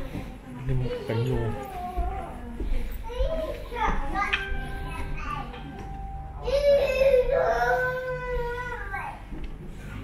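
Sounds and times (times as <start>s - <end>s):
children talking and calling out: 0.0s - 5.8s, 6.4s - 9.4s.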